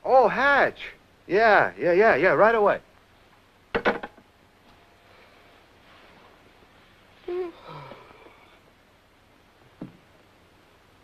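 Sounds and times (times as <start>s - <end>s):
sleepy groan: 7.3s - 8.6s.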